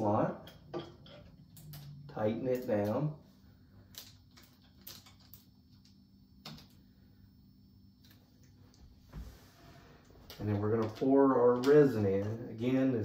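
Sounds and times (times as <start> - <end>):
faint steady low hum: 0.0 - 13.0.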